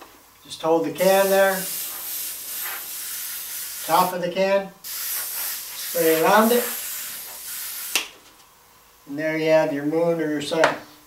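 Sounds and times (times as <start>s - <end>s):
airbrush spraying hiss: 1.0s - 4.2s, 4.8s - 8.2s.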